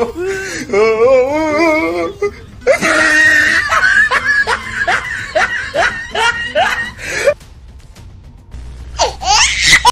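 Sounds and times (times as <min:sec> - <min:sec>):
laughter sound effect: 0:02.9 - 0:07.3.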